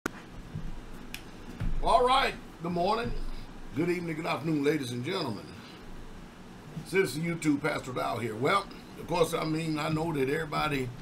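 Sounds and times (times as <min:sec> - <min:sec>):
low thuds: 0:00.4 - 0:03.7
man speaking: 0:01.8 - 0:05.6, 0:06.9 - 0:11.0.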